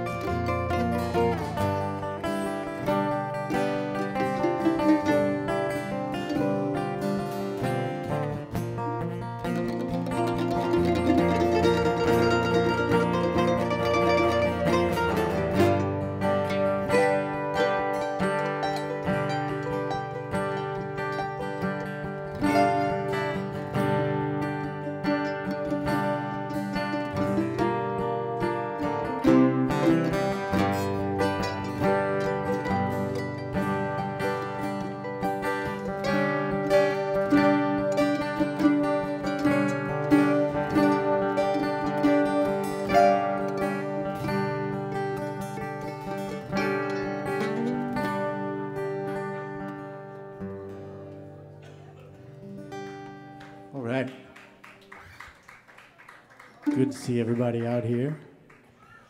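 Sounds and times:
mandolin picking: 0.0s - 53.8s, 56.6s - 57.8s
acoustic guitars picking: 0.0s - 54.6s, 56.6s - 58.1s.

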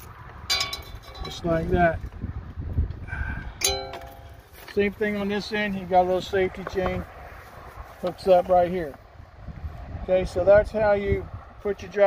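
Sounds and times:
metal hook clinking: 0.5s - 1.4s, 3.6s - 4.4s.

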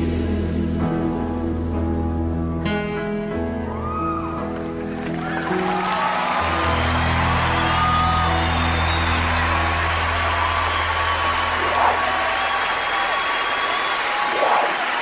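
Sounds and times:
congregation applauding and cheering: 3.7s - 15.0s.

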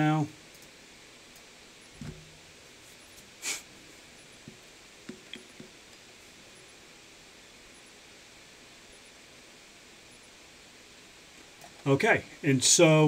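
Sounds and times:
faint room hiss: 0.0s - 13.0s
computer mouse clicks: 5.1s - 5.7s.

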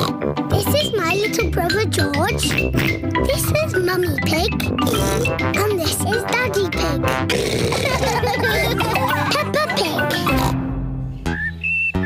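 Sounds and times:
cartoon pig snorts: 0.0s - 0.2s, 4.8s - 5.4s, 7.1s - 8.2s, 10.2s - 10.6s
light children's theme tune: 0.0s - 12.0s
child speaking: 0.5s - 2.5s, 3.2s - 4.7s, 5.6s - 7.0s, 9.1s - 10.4s.

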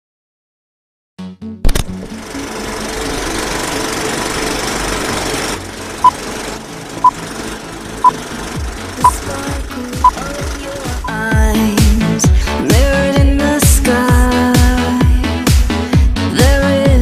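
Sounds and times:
film projector rattling: 2.0s - 11.1s.

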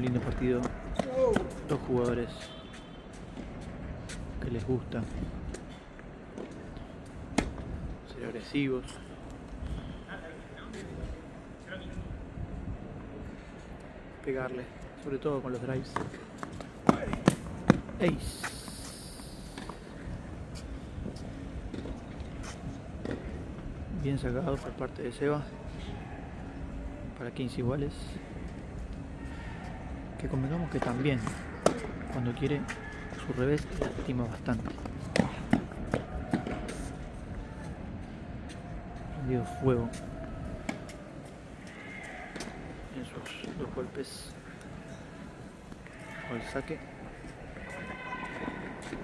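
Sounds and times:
faint open-air ambience: 0.0s - 49.0s.

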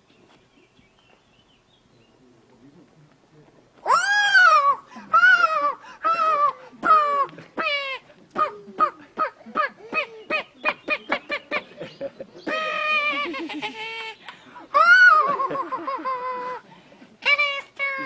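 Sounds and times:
person imitating hen squawks: 3.9s - 11.4s.

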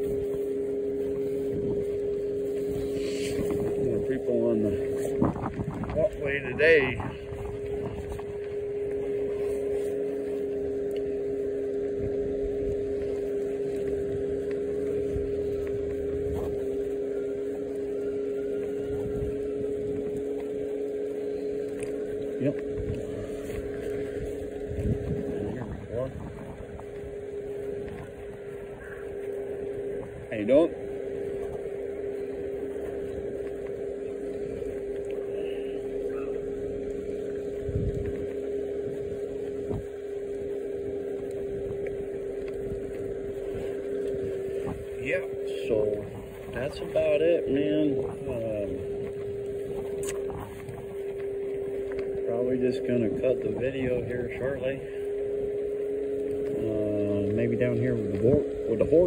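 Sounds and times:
tyre and wind noise: 0.0s - 10.2s, 11.7s - 35.0s, 36.1s - 47.1s
electric scooter motor whining: 0.0s - 59.0s.

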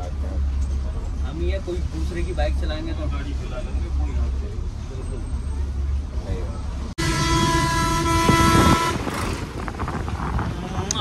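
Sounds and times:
bus engine rumble: 0.0s - 11.0s
road noise: 0.0s - 11.0s
vehicle horn: 7.0s - 9.4s.

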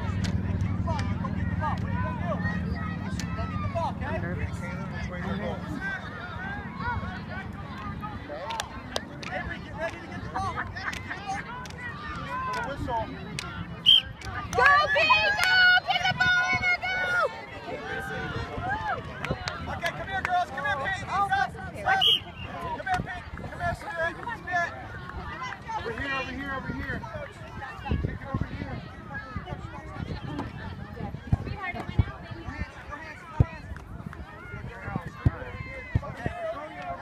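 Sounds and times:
many voices chattering: 0.0s - 37.0s
spectators shouting: 13.6s - 28.0s.

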